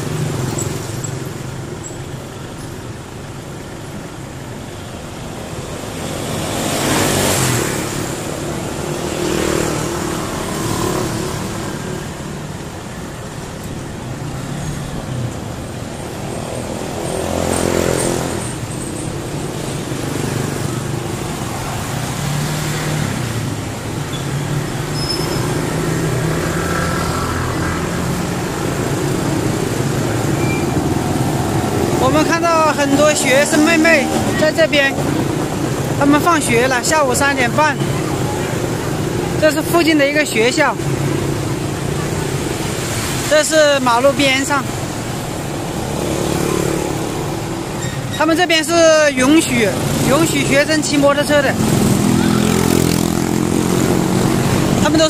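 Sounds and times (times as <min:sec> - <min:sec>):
scooters and cars passing: 0:00.0 - 0:55.0
vehicles passing loudly and close: 0:00.0 - 0:55.0.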